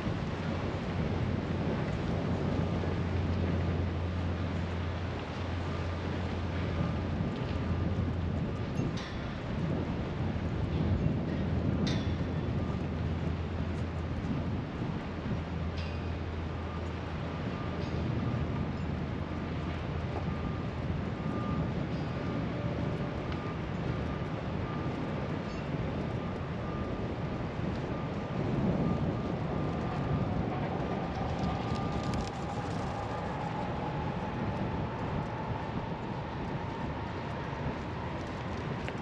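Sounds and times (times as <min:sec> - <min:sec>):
rumble of motor vehicles: 0:00.0 - 0:39.0.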